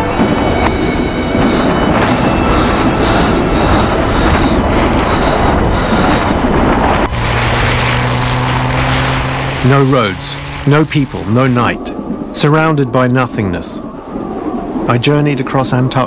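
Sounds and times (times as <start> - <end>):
steady low hum: 0.0 - 12.8
wind gusting against a tent: 0.0 - 16.0.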